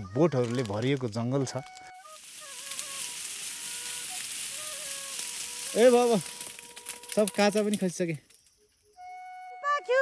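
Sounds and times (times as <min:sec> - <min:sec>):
cicadas droning: 0:00.0 - 0:10.0
soft flute-like melody: 0:00.0 - 0:10.0.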